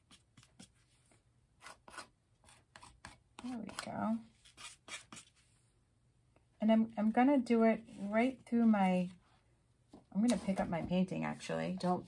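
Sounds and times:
palette knife scraping canvas: 1.6 - 5.4.

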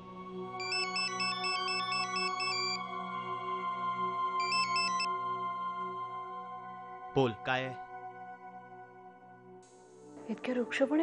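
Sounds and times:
background music: 0.0 - 11.0
phone ringtone beeps: 0.6 - 2.8, 4.4 - 5.1.

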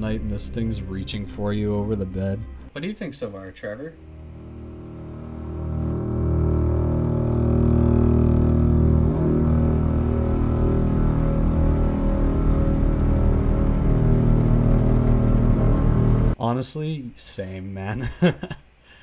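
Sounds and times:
droning synthesizer chord: 0.0 - 2.7, 3.7 - 16.4
fast low throb: 0.0 - 2.8, 3.9 - 16.4.

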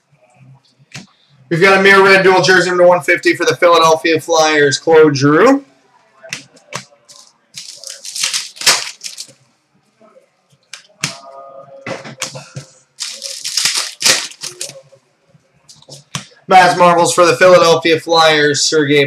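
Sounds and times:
cards and wrappers crinkling: 7.1 - 9.4, 13.0 - 14.8.

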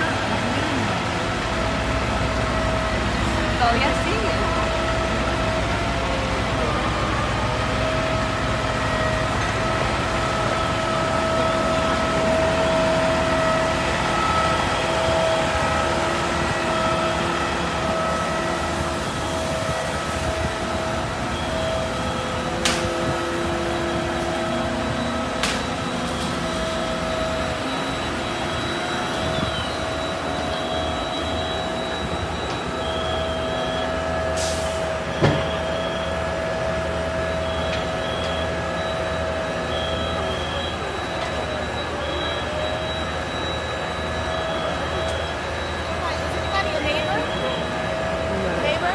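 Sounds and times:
diesel engine drone: 0.0 - 48.9
high whine: 0.0 - 48.9.

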